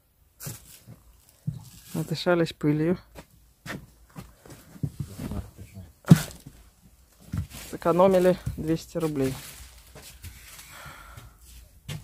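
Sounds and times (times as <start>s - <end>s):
person exhaling: 10.6s - 11.4s.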